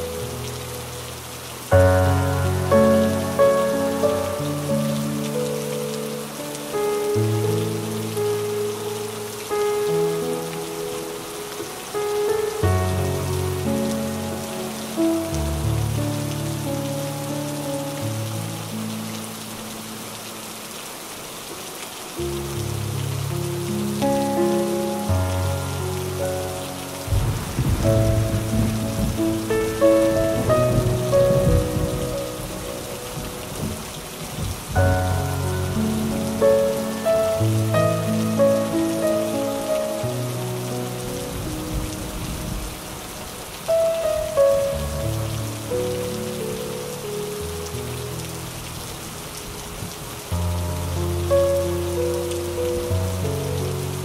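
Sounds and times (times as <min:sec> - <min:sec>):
rain falling on paving stones: 0:00.0 - 0:54.0
slow jazz piano music: 0:00.0 - 0:54.0
distant thunder rumble: 0:27.1 - 0:36.7.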